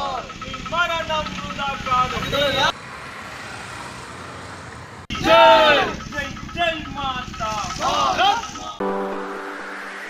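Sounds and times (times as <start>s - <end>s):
low rumble of traffic: 0.0s - 8.8s
men shouting slogans: 5.1s - 6.8s, 7.5s - 8.6s.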